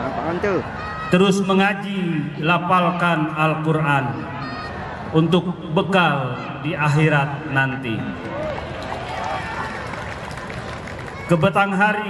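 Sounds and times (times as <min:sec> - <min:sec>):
crowd calling out: 0:00.0 - 0:12.0.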